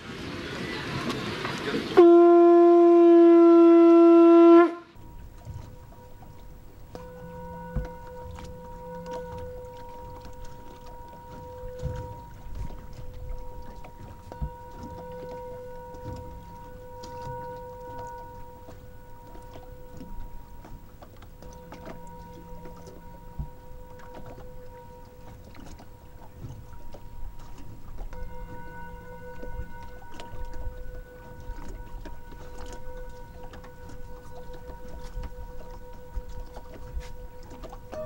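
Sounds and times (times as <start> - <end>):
motorboat engine rumble: 0.0 - 38.0
water splashing against hull: 0.0 - 38.0
steady held tone: 4.8 - 38.0
low bumps and thumps: 5.0 - 38.0.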